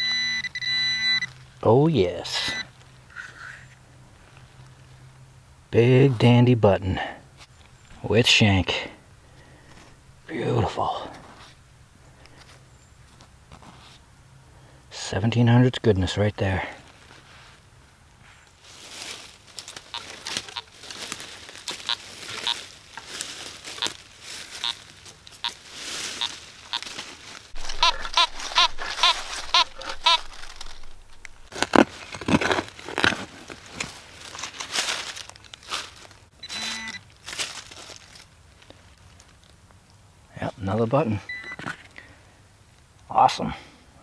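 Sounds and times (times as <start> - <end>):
metal detector beeps: 0.0 - 1.3, 2.4 - 2.7, 27.6 - 31.4, 36.4 - 37.0, 41.3 - 41.6
dry leaves crunching underfoot: 18.2 - 39.7.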